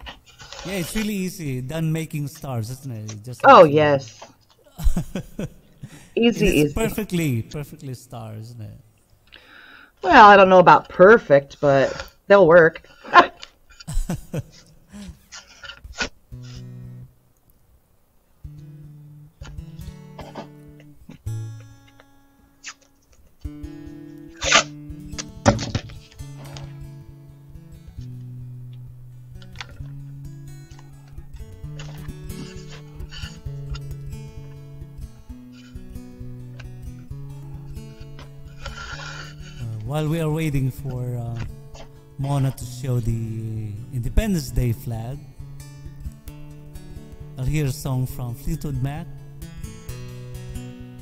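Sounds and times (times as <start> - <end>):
acoustic guitar picking: 0.0 - 17.4, 18.3 - 51.0
person laughing: 0.7 - 1.1, 4.6 - 7.7, 13.1 - 15.4.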